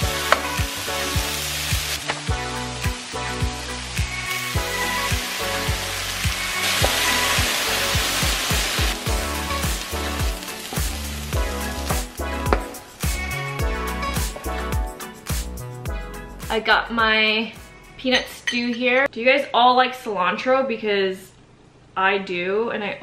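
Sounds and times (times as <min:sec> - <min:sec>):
vegetables sizzling in a frying pan: 0:00.0 - 0:12.2
background music with steady beat: 0:00.0 - 0:18.4.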